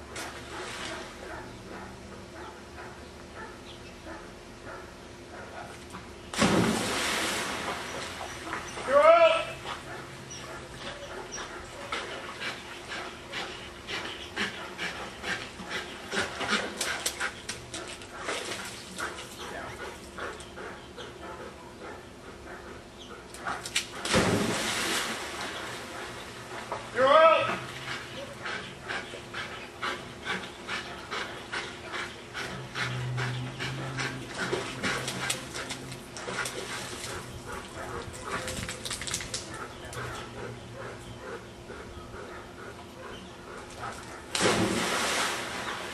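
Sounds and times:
dog whining and panting: 0:09.6 - 0:17.5, 0:27.8 - 0:35.8.

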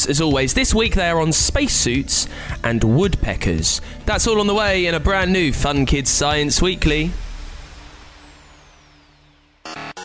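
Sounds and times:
high whistle sliding down: 0:07.6 - 0:10.0.

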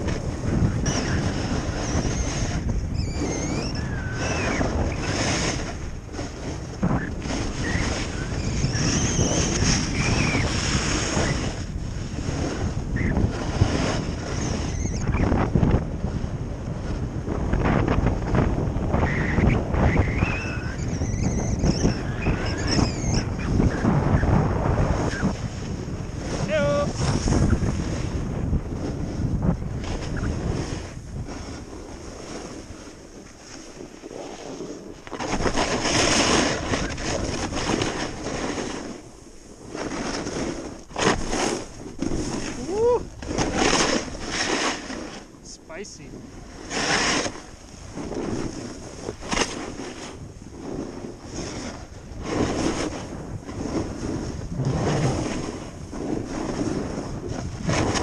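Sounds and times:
skis sliding on snow: 0:00.0 - 0:14.6, 0:23.4 - 0:58.0
wind rushing over microphone: 0:00.0 - 0:58.0.

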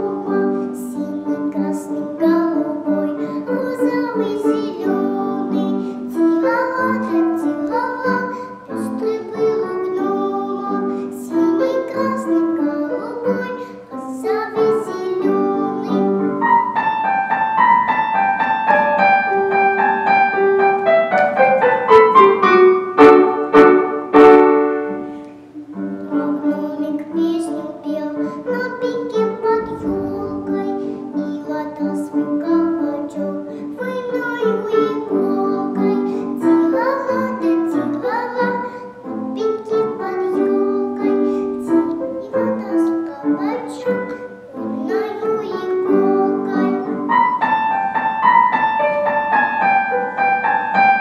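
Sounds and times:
girl singing: 0:00.0 - 0:20.5, 0:23.0 - 0:51.0
piano accompaniment: 0:00.0 - 0:51.0.

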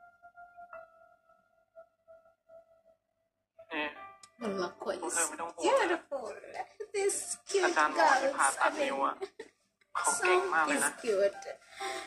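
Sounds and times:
people talking: 0:03.7 - 0:09.4, 0:10.0 - 0:12.0
faint held music tone: 0:10.0 - 0:12.0.

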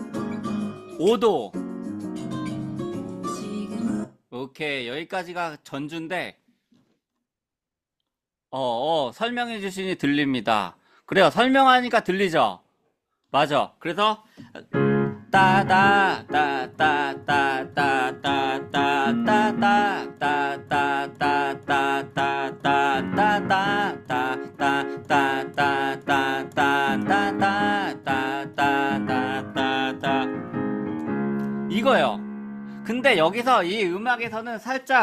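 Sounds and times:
keyboard playing chords: 0:14.7 - 0:33.9.

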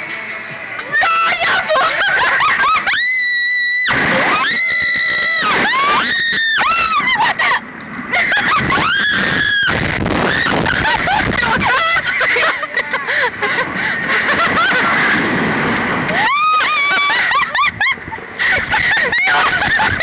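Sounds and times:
women screaming: 0:00.9 - 0:07.6, 0:08.2 - 0:13.5, 0:16.1 - 0:20.0.

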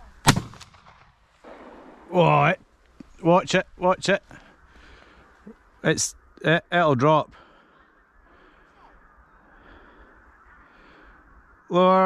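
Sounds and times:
low wind noise: 0:00.0 - 0:12.0
distant crow cawing: 0:04.3 - 0:05.8, 0:07.4 - 0:11.6.

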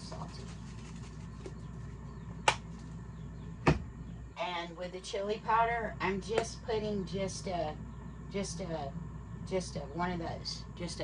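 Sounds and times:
air fryer fan humming: 0:00.0 - 0:11.0.

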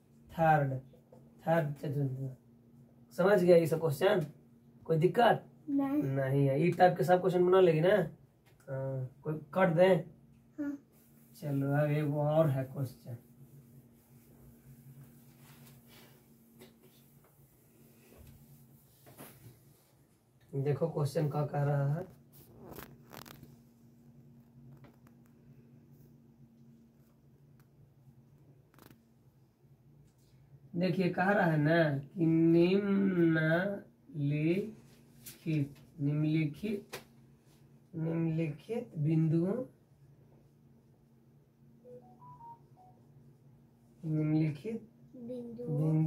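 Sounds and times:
faint steady hum: 0:00.0 - 0:46.0
soft rustling: 0:10.9 - 0:20.4, 0:21.8 - 0:27.6.

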